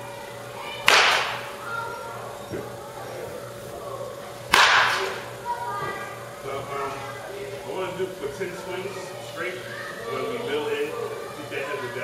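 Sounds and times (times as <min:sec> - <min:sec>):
baseball bat cracking ball: 0:00.8 - 0:01.6, 0:04.5 - 0:05.3.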